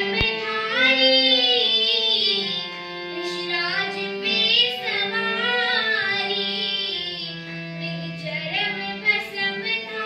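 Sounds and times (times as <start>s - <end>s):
girl singing: 0.0s - 10.0s
harmonium held notes: 0.0s - 10.0s.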